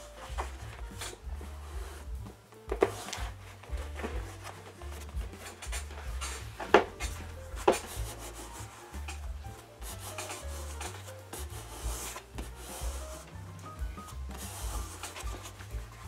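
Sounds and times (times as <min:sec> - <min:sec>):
background music: 0:00.0 - 0:16.0
hands scuffing over vinyl: 0:00.0 - 0:16.0.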